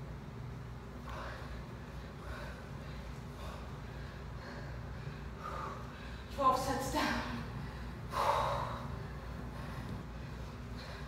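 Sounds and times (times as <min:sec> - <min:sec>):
woman breathing hard: 0:01.0 - 0:06.4, 0:07.0 - 0:11.0.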